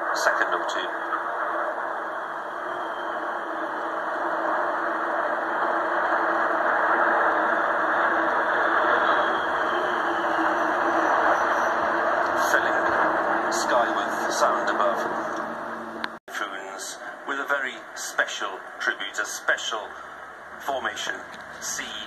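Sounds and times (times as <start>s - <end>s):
faint falling whine: 0.0s - 16.2s
military jets flying overhead: 0.0s - 16.2s.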